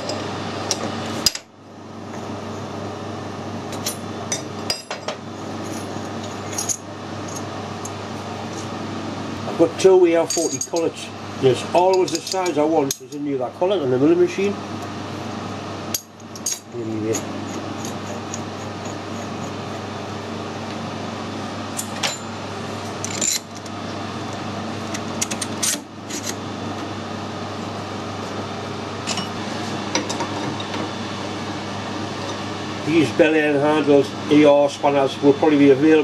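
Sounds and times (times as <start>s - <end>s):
steady machine hum: 0.0s - 36.0s.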